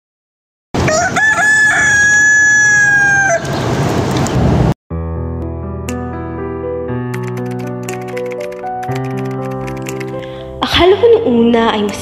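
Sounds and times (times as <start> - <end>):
rooster crowing: 0.8 - 3.6.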